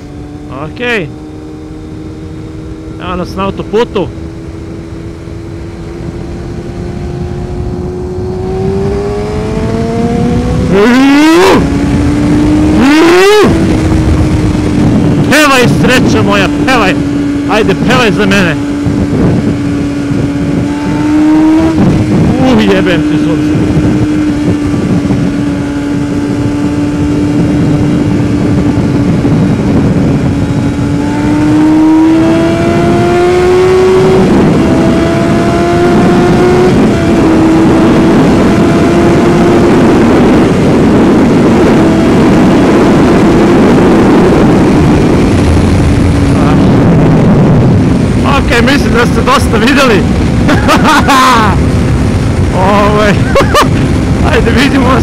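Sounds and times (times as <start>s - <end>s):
motorcycle engine accelerating: 0.0s - 55.0s
wind noise on microphone: 0.0s - 55.0s.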